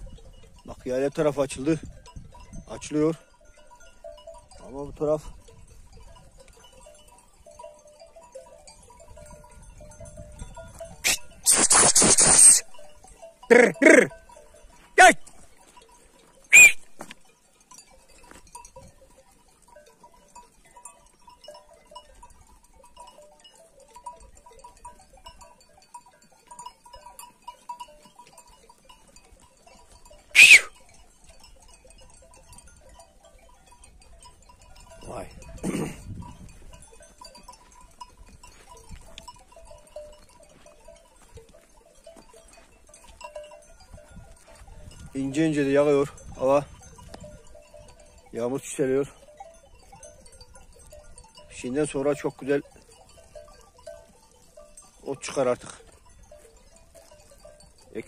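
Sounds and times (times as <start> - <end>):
bells tinkling: 0.0 - 11.7, 12.3 - 58.0
sheep grazing: 0.0 - 58.0
low sheep call: 11.0 - 12.8, 16.5 - 17.1, 30.3 - 30.8
high-pitched sheep calls: 11.0 - 14.1, 16.5 - 17.1, 30.2 - 30.8.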